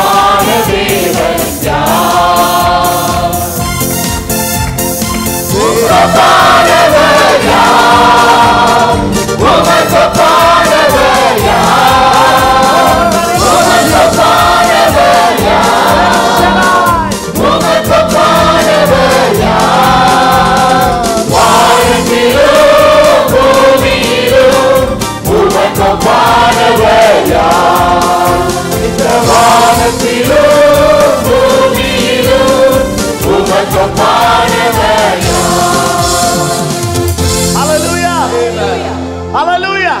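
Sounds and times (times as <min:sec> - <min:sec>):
backing singers singing: 0:00.0 - 0:03.6, 0:05.5 - 0:37.1, 0:37.8 - 0:39.2
instrumental backing with steady beat: 0:00.0 - 0:40.0
man singing lead: 0:12.6 - 0:14.2.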